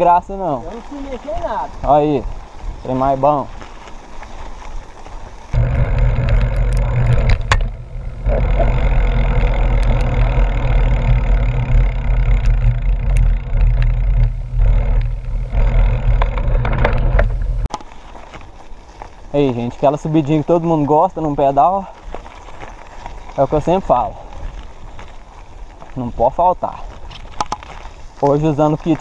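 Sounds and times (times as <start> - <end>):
bike and gravel rattles: 0.0 - 29.0
wind rumble on microphone: 0.8 - 17.7.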